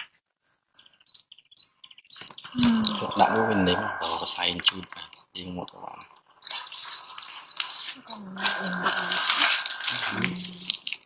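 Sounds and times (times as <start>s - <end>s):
baby monkeys calling: 6.1s - 11.0s.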